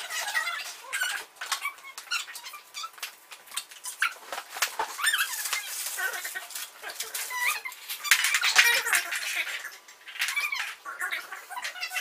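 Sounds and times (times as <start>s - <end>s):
paper gift bag rustling: 4.2s - 7.7s.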